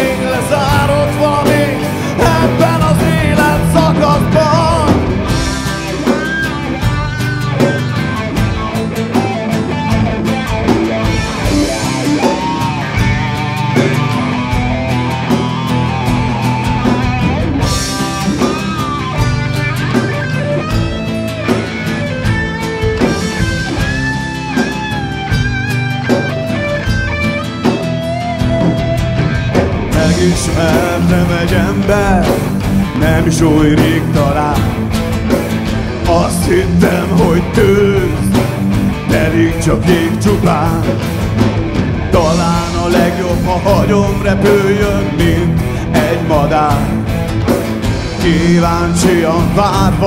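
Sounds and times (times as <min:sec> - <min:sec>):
drum kit: 0:00.0 - 0:50.0
electric guitar with pitch bends: 0:00.0 - 0:50.0.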